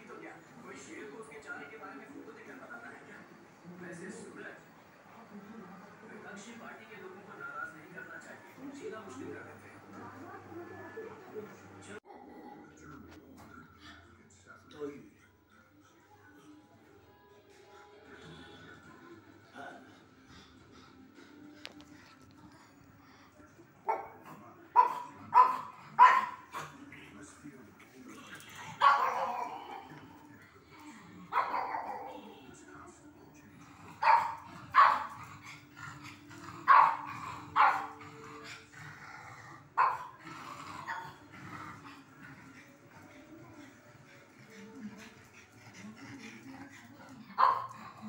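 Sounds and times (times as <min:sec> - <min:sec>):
dog barking excitedly: 0:24.8 - 0:26.6, 0:28.8 - 0:29.6, 0:34.0 - 0:35.2, 0:36.7 - 0:38.0, 0:39.8 - 0:40.2, 0:47.4 - 0:47.8.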